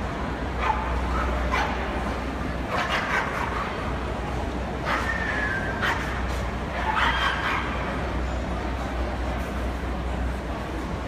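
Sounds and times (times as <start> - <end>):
dog barking: 0.6 - 1.8, 2.7 - 3.7, 4.8 - 6.2, 6.8 - 7.8.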